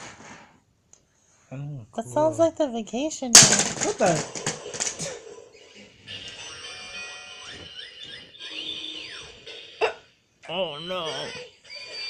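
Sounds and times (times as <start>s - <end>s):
electronic toy game music: 6.1s - 9.9s.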